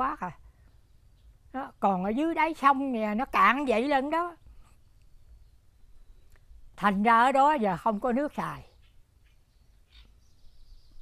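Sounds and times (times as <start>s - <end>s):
faint bird chirp: 0.2s - 2.6s, 3.2s - 6.9s, 7.6s - 11.0s
thin high bird call: 8.8s - 11.0s.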